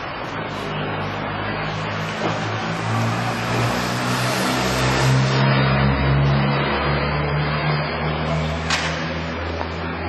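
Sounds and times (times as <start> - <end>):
passing traffic rush: 0.0 - 10.0
vehicle engine: 0.0 - 10.0.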